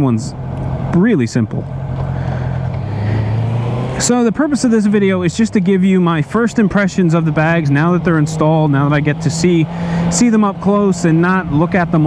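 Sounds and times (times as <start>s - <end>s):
road noise: 0.0s - 12.0s.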